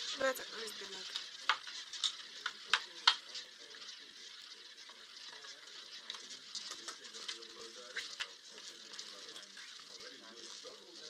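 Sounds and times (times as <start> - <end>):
roulette ball whirring rattle: 0.0 - 11.0.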